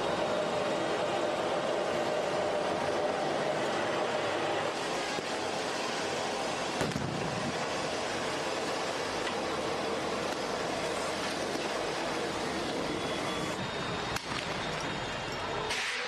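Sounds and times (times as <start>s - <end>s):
street noise: 0.0s - 16.0s.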